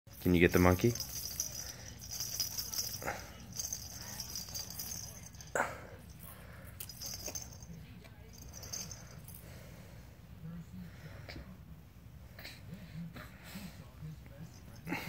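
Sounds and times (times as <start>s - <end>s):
toy jingling: 0.1s - 9.5s.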